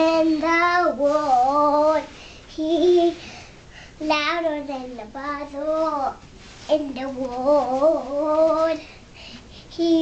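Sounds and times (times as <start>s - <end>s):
girl singing: 0.0s - 10.0s.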